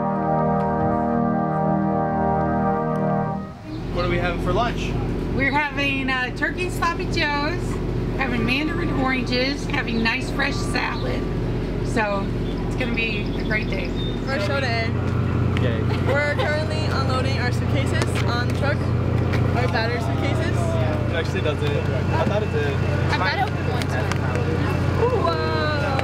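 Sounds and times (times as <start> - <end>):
steady low hum: 0.0 - 26.0
people talking: 3.8 - 15.0, 15.6 - 26.0.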